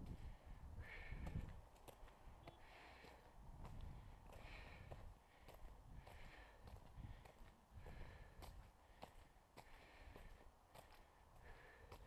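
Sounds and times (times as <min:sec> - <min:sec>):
footsteps on dirt road: 0:00.0 - 0:12.0
soft breathing: 0:00.0 - 0:12.0.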